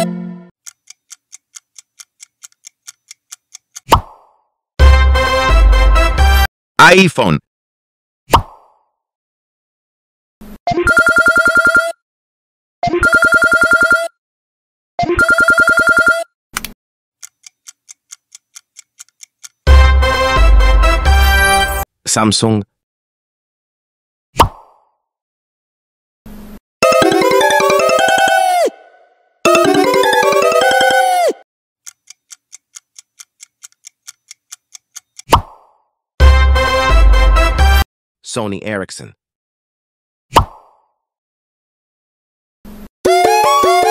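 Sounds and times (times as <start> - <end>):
clock ticking quickly: 0.6 - 3.9, 17.2 - 19.8, 31.8 - 35.3
phone ringtone: 10.7 - 12.0, 12.8 - 14.2, 15.0 - 16.3, 26.8 - 28.8, 29.5 - 31.4, 43.1 - 43.9
telephone ringing: 10.9 - 12.0, 13.0 - 14.1, 15.2 - 16.3.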